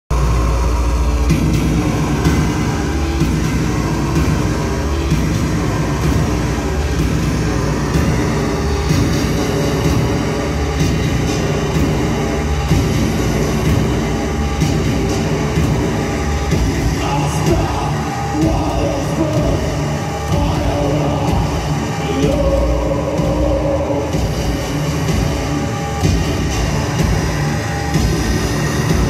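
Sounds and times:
loud electronic music: 0:00.1 - 0:29.0
rumbling low drone: 0:00.1 - 0:29.0.

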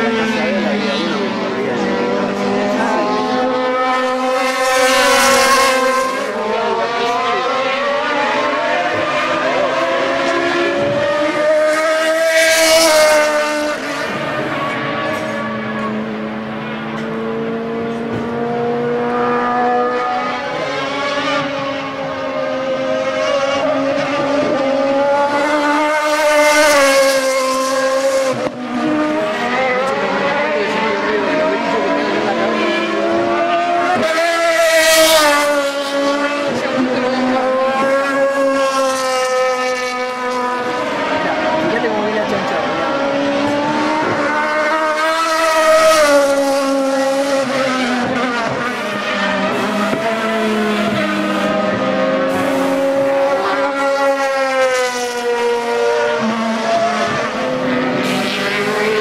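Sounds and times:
racing car engines passing: 0:00.0 - 0:59.0.

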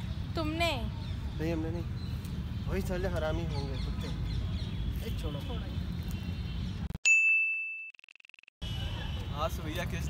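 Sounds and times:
outdoor background noise: 0:00.0 - 0:07.3, 0:08.6 - 0:10.0
bell-like ding: 0:07.0 - 0:08.0.

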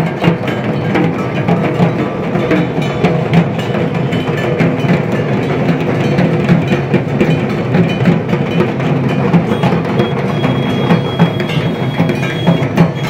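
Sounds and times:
barrel drums beaten with sticks: 0:00.0 - 0:13.0.

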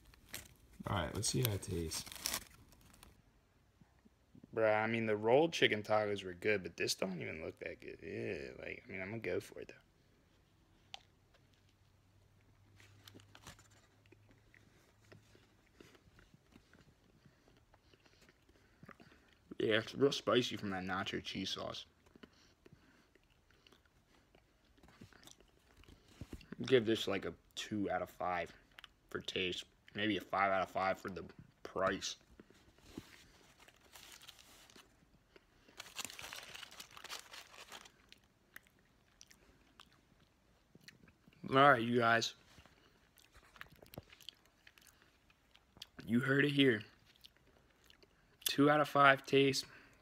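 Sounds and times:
aluminium foil crinkling: 0:00.0 - 0:03.2, 0:33.2 - 0:35.0, 0:35.7 - 0:38.3
person chewing: 0:13.0 - 0:19.6, 0:21.9 - 0:26.6, 0:32.2 - 0:41.4, 0:42.5 - 0:46.0, 0:47.0 - 0:48.5.

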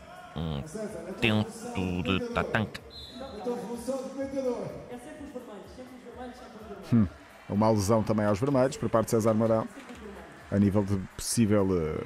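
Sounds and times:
man talking: 0:00.4 - 0:02.9, 0:06.8 - 0:09.6.

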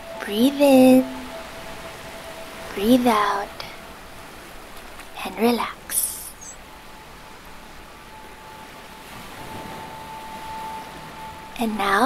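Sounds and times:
held high tone: 0:00.0 - 0:12.0
soft steady hiss: 0:00.0 - 0:12.0.

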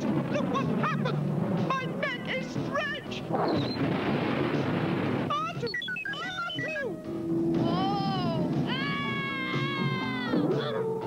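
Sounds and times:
background music: 0:00.0 - 0:11.0
cartoon character screaming: 0:08.7 - 0:10.9.

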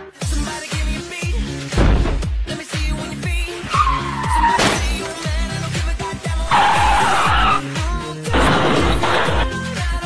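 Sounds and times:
background music with steady beat: 0:00.0 - 0:10.0
tyres skidding: 0:03.4 - 0:09.6.

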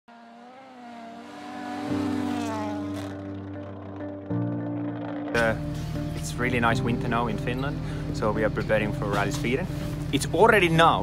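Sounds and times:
rally car engine revving: 0:00.1 - 0:05.8
background music with sustained notes: 0:00.5 - 0:11.0.

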